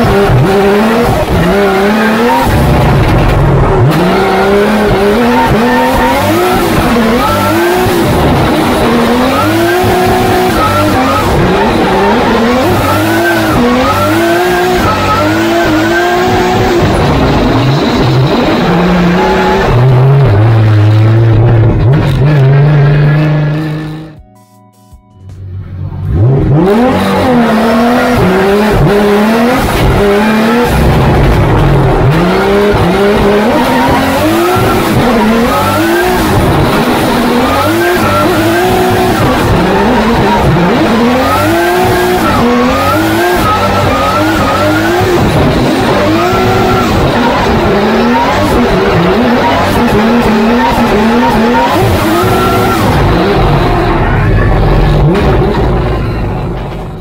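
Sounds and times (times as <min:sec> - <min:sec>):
car engine revving: 0:00.0 - 0:24.2, 0:25.5 - 0:57.0
tyre squeal: 0:49.2 - 0:53.2.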